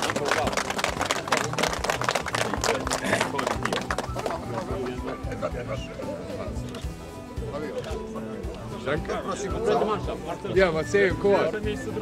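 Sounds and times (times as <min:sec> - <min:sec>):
people clapping: 0:00.0 - 0:05.4
background music: 0:00.0 - 0:12.0.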